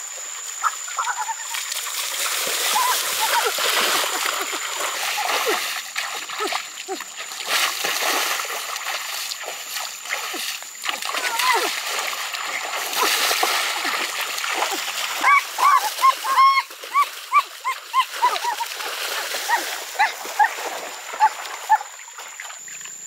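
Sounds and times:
stream water splashing: 0:00.0 - 0:23.0
short high yelping cries: 0:00.6 - 0:01.6, 0:02.7 - 0:03.5, 0:15.2 - 0:18.6.

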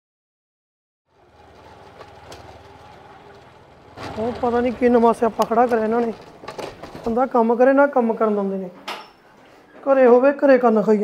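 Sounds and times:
motorcycle engine running: 0:01.1 - 0:07.2.

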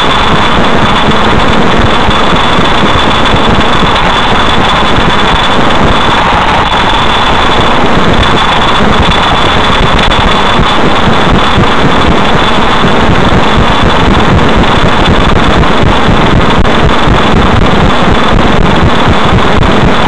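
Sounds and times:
car engine and road rumble: 0:00.0 - 0:11.6
thin high steady whine: 0:00.0 - 0:20.0.

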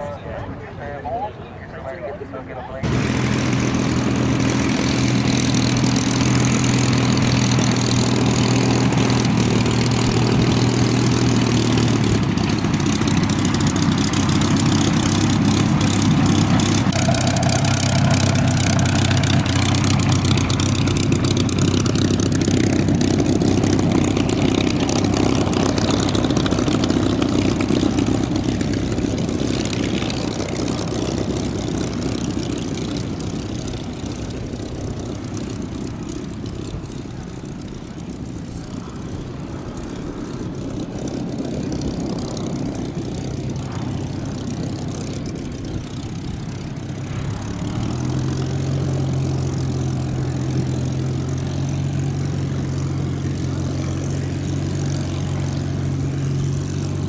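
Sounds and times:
propeller aircraft engine taxiing: 0:00.0 - 0:57.0.

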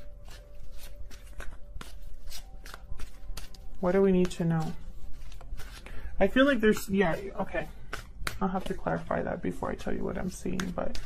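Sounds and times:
cards being shuffled: 0:00.0 - 0:09.2, 0:10.1 - 0:11.0.

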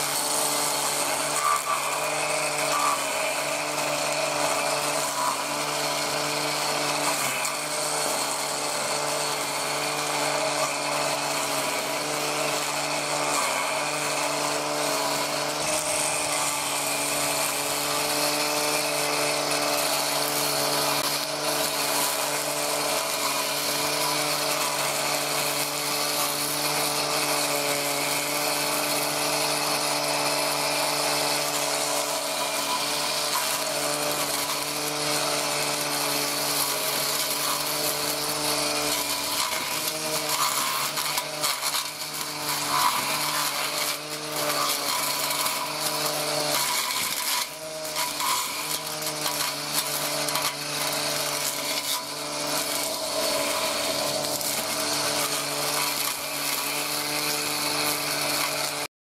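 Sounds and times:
blade cutting grass hiss: 0:00.0 - 0:58.9
grinder motor whine: 0:00.0 - 0:58.9.

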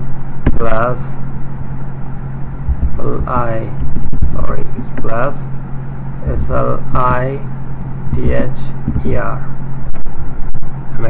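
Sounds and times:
steady low hum: 0:00.0 - 0:11.0
low rumble: 0:02.5 - 0:05.6.

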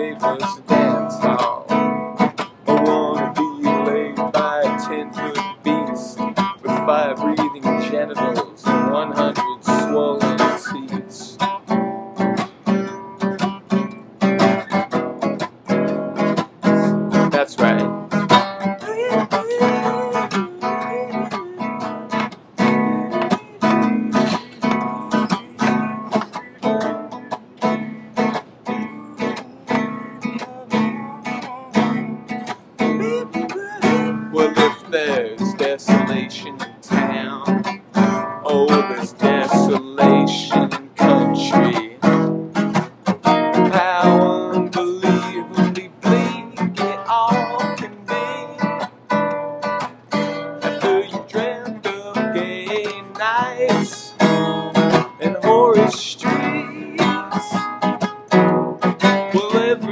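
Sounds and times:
acoustic guitar strumming: 0:00.0 - 0:59.9.

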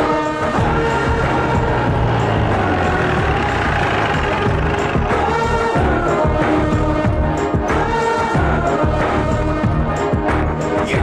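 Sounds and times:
film music: 0:00.0 - 0:11.0
car engine running: 0:00.6 - 0:07.3.

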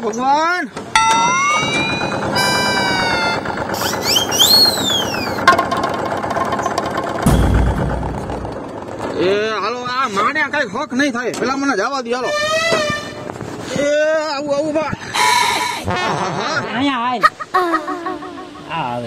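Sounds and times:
tractor diesel engine rattling: 0:00.8 - 0:10.6
cartoon whistle sound effects: 0:01.0 - 0:05.5
deep low rumble: 0:07.3 - 0:08.9.

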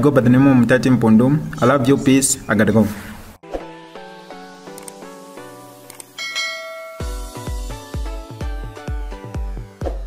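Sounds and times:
electronic dance music: 0:04.3 - 0:10.0
click: 0:04.7 - 0:05.0, 0:05.9 - 0:06.1
bell-like notification chime: 0:06.2 - 0:07.6.

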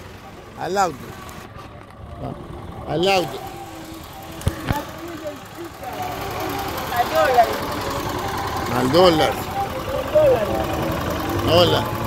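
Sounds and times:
car engine idling: 0:00.0 - 0:12.0
faint street noise: 0:00.0 - 0:12.0.

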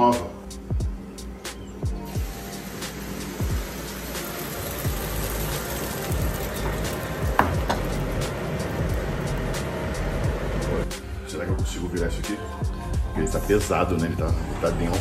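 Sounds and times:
background music: 0:00.0 - 0:15.0
batter sizzling in frying pan: 0:02.1 - 0:10.8.

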